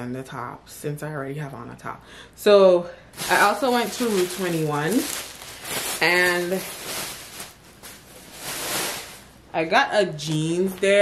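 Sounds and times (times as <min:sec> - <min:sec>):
plastic bag rustling: 0:03.2 - 0:09.4.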